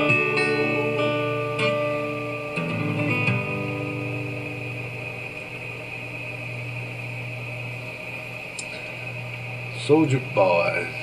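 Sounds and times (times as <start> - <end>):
strummed guitar chord: 0.0 - 6.6
low electrical hum: 0.0 - 11.0
steady hiss: 0.0 - 11.0.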